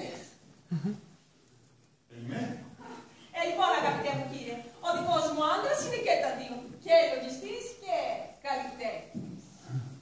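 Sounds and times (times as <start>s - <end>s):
woman speaking: 3.3s - 9.2s.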